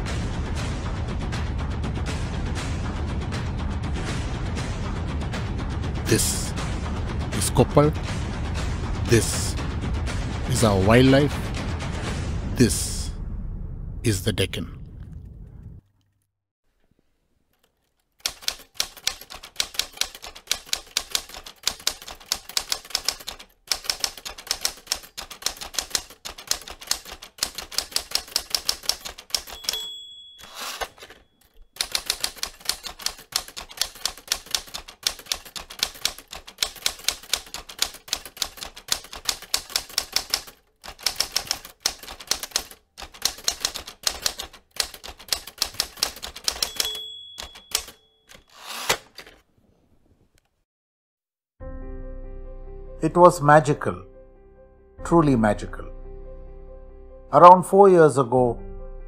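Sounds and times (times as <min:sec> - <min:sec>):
typewriter keys clacking: 0:17.6 - 0:49.4
typewriter bell ding: 0:28.6 - 0:33.2, 0:45.8 - 0:48.8.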